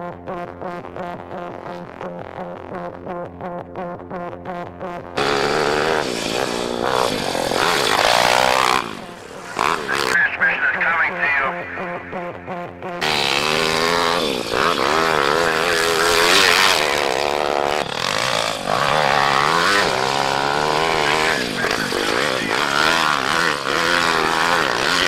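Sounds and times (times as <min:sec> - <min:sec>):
small motorbike engine revving: 0:05.1 - 0:10.2, 0:12.1 - 0:25.0.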